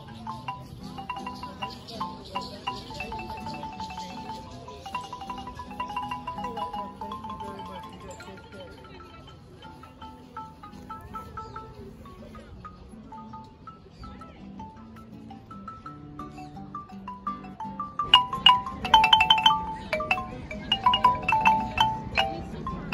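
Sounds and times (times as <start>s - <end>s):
marimba played with mallets: 0.0s - 22.9s.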